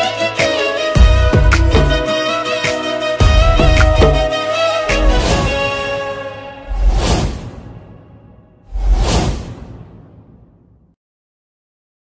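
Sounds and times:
whoosh and boom hit: 0:06.7 - 0:10.9.

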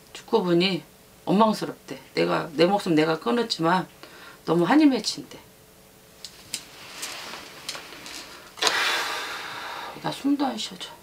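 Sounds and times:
cloth flags swishing: 0:06.4 - 0:08.6.

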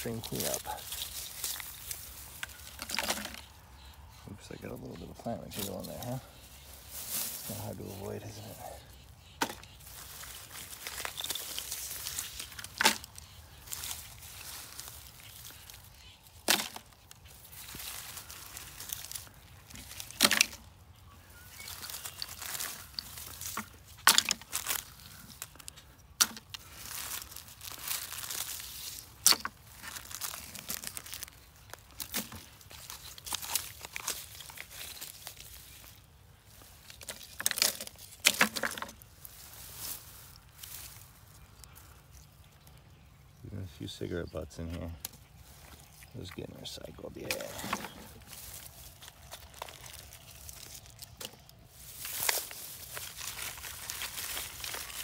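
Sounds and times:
hands rustling dry grass: 0:00.0 - 0:55.0.

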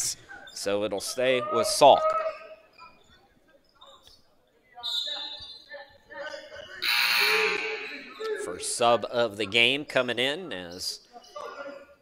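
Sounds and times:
quiet gym sounds: 0:00.0 - 0:12.0
scoreboard horn buzzing: 0:06.8 - 0:08.0.

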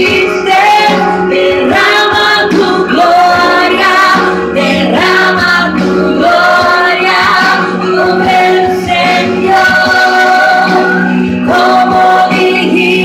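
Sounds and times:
backing music: 0:00.0 - 0:13.0
woman singing into microphone: 0:00.0 - 0:13.0.

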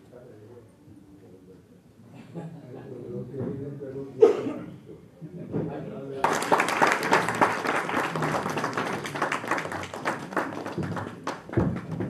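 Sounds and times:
audience applauding: 0:06.2 - 0:12.0.

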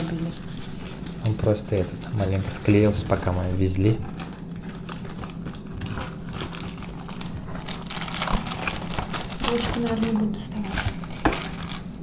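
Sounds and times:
paper wrappers crinkling: 0:00.0 - 0:12.0.

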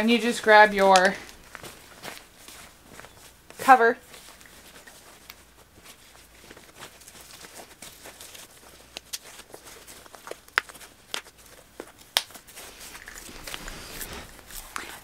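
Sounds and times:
fabric rustling: 0:00.0 - 0:15.0.

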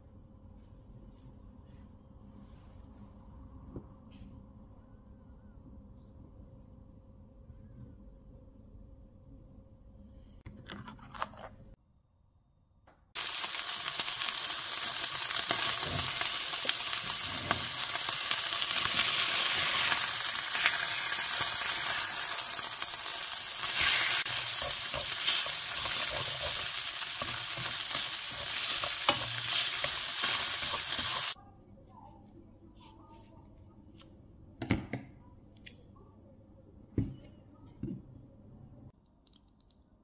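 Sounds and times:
fish sizzling in a pan: 0:13.2 - 0:31.4
chopsticks scraping a pan: 0:23.6 - 0:31.4.

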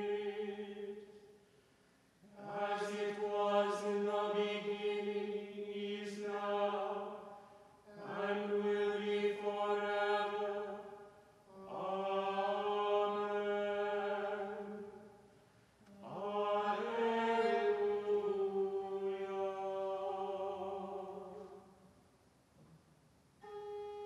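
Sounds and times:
plainsong chant: 0:00.0 - 0:01.3, 0:02.2 - 0:22.0, 0:23.4 - 0:24.0.

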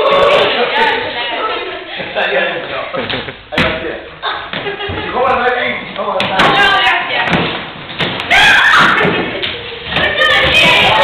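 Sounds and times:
voices shouting: 0:08.3 - 0:09.2, 0:09.9 - 0:11.0.

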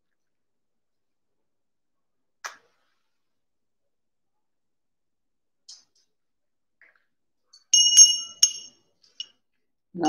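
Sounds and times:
brass hand bell ringing: 0:07.8 - 0:08.7.

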